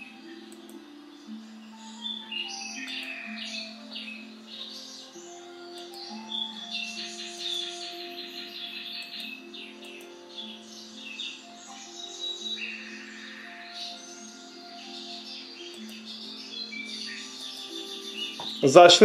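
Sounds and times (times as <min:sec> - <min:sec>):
birds chirping: 0:00.0 - 0:19.0
soft instrumental music: 0:00.0 - 0:19.0.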